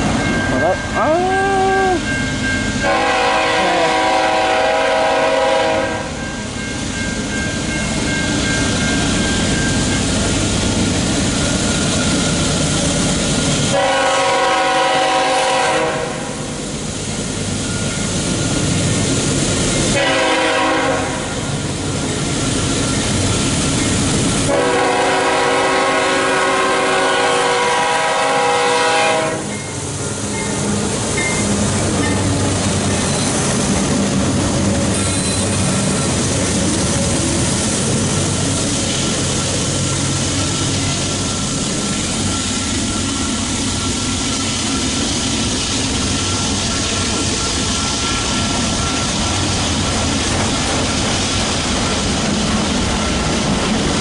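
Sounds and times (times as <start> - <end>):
train rumbling: 0.0 - 54.0
locomotive air horn blasts: 2.8 - 6.2, 13.7 - 16.5, 20.0 - 21.4, 24.5 - 29.6.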